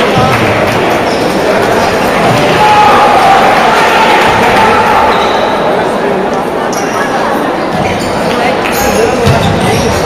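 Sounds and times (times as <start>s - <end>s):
chatter in sports hall: 0.0s - 10.0s.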